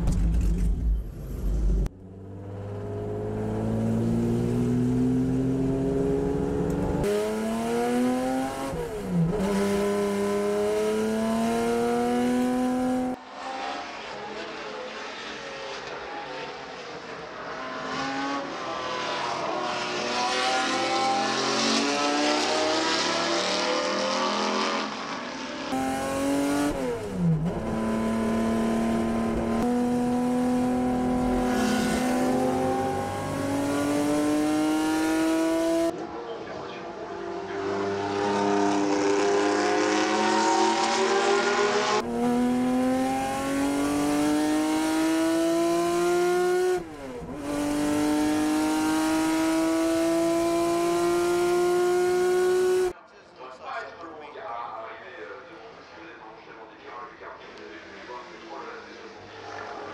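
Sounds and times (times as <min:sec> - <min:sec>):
racing car engine revving: 0:02.5 - 0:36.0, 0:37.2 - 0:52.9.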